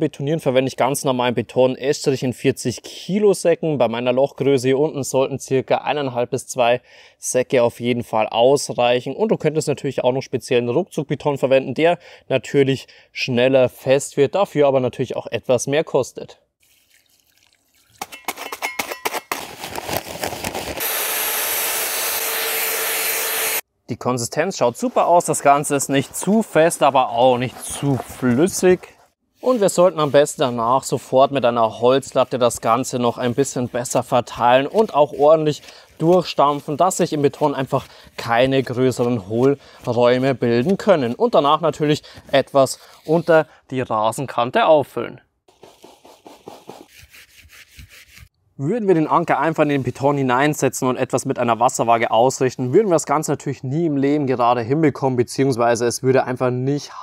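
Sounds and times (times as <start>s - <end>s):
paper sack tearing: 18.2s - 21.2s, 25.3s - 28.9s
wet concrete scraping: 24.7s - 30.7s.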